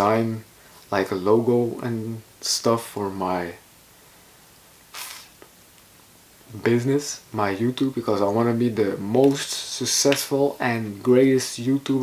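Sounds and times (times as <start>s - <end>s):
sharp hiss of breath: 4.9s - 5.4s.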